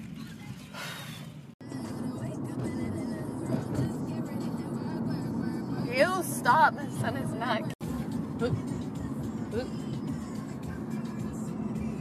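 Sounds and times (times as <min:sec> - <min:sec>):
car cabin rumble: 0:00.0 - 0:12.0
music playing: 0:01.6 - 0:12.0.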